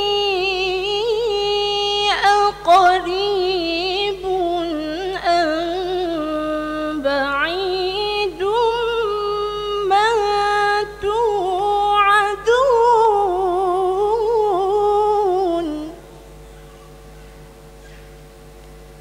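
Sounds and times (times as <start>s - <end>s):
woman reciting melodically: 0.0s - 16.2s.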